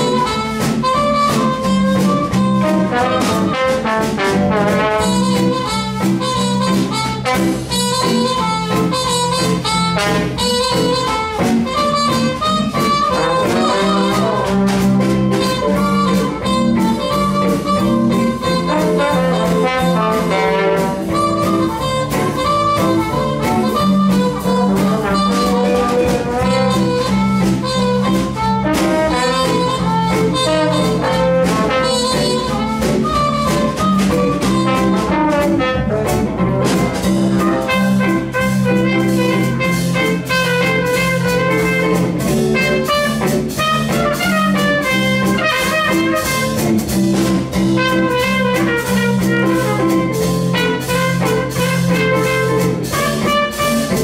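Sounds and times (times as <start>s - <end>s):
archtop guitar chords: 0.0s - 54.0s
drum kit: 0.0s - 54.0s
trombone: 0.0s - 54.0s
trumpet melody: 0.0s - 54.0s.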